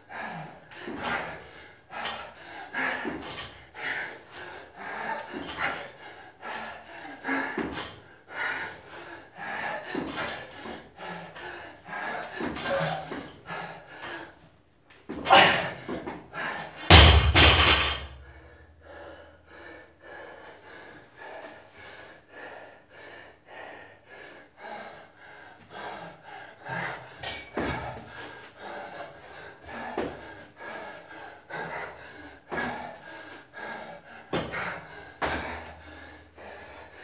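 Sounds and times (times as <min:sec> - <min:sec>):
hard rapid breathing: 0:00.0 - 0:14.5, 0:15.3 - 0:37.0
barbell dropped with heavy thud: 0:16.9 - 0:18.2.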